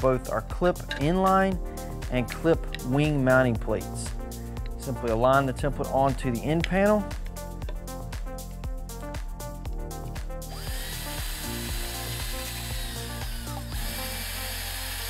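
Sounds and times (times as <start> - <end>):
background music with a beat: 0.0 - 15.0
cordless drill whining: 10.5 - 15.0.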